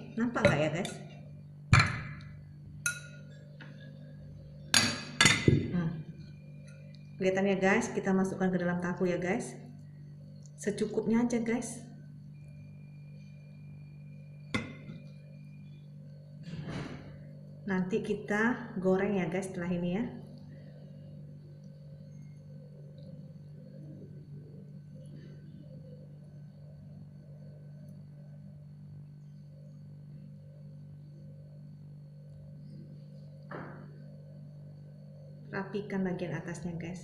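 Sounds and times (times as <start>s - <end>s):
steady low hum: 0.0s - 37.0s
metal spoon clinking glass bowl: 0.4s - 1.1s, 2.8s - 3.4s, 4.8s - 5.6s.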